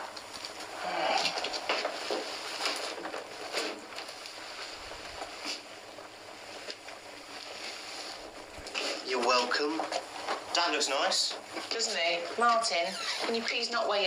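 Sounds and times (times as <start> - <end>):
rustling: 0.0 - 14.0.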